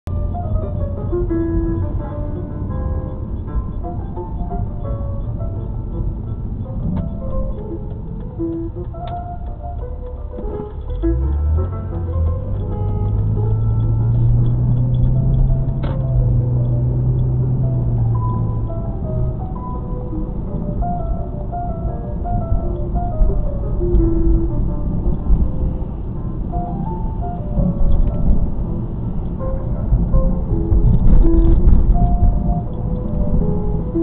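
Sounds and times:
road noise: 0.0s - 34.0s
car engine hum: 0.1s - 34.0s
car radio music: 0.1s - 34.0s.

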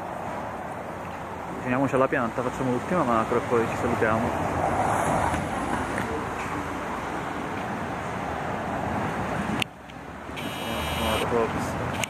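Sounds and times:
city street traffic: 0.0s - 12.0s
faint high whine: 10.4s - 11.3s.

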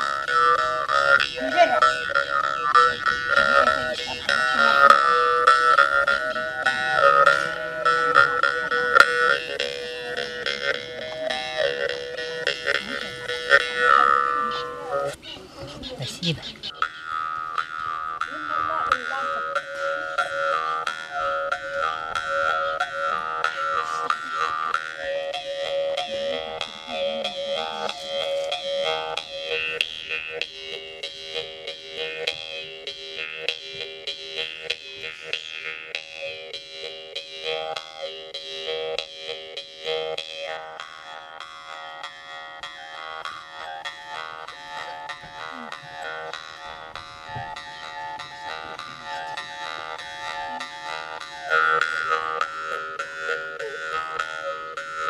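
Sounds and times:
jaw harp drone and overtones: 0.0s - 55.0s.

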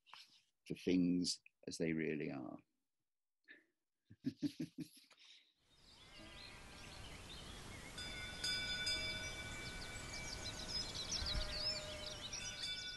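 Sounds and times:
birds chirping: 5.7s - 12.9s
steady ringing tone: 8.0s - 12.9s.

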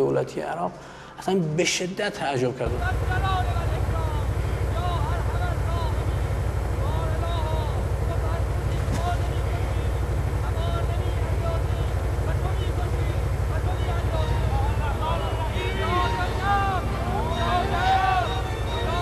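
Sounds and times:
faint voices: 2.7s - 19.0s
truck engine rumbling: 2.7s - 19.0s.

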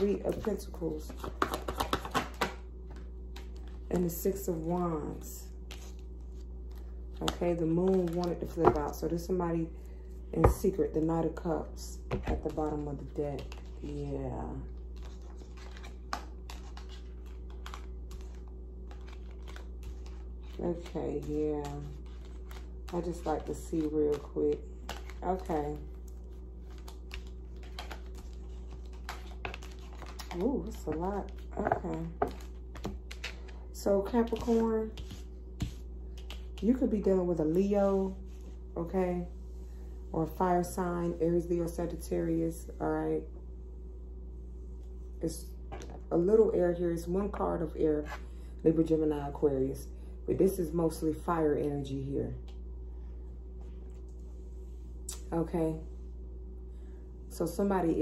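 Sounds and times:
cards shuffled with clicks and taps: 0.0s - 9.3s, 12.0s - 14.0s, 14.6s - 36.8s
steady low hum: 0.0s - 58.0s.

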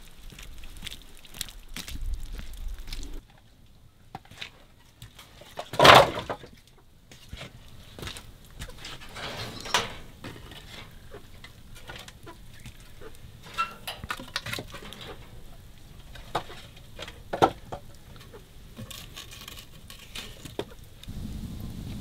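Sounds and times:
firewood knocking: 16.0s - 18.2s.

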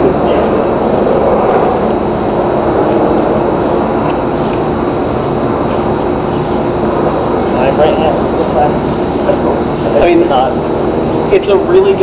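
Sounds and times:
faint constant hum: 0.0s - 12.0s
loud mechanical drone: 0.0s - 12.0s.

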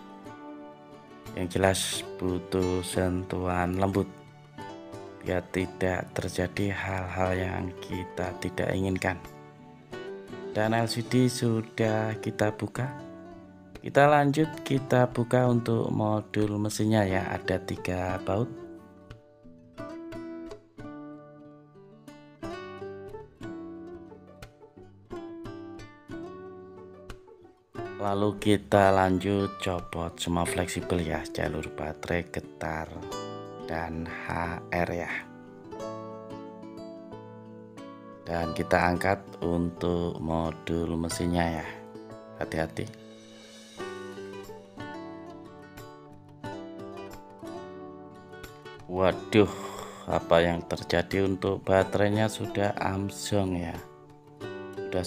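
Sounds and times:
plucked guitar notes: 0.0s - 55.0s.

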